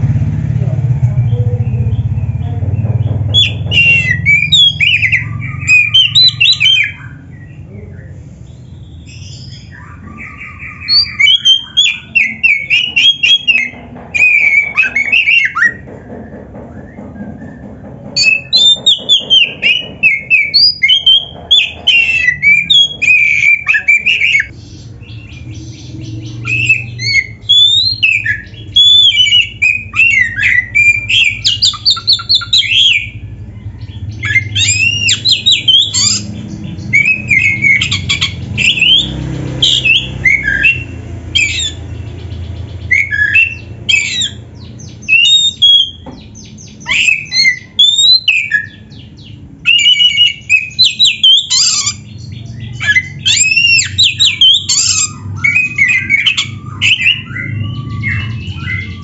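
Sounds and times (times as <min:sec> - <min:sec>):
bird singing whistled phrases: 0:03.4 - 0:15.8, 0:16.8 - 0:33.2, 0:34.2 - 0:42.0, 0:42.8 - 0:59.0.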